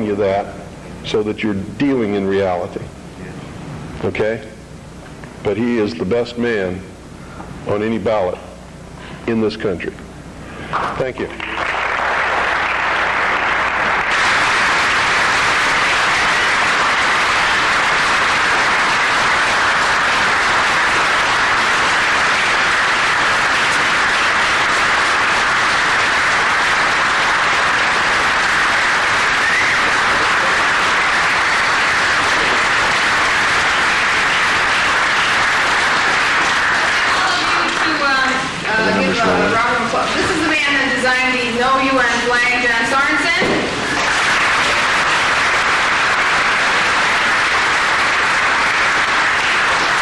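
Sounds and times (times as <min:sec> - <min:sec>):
audience applauding: 0:10.7 - 0:39.3, 0:43.6 - 0:50.0.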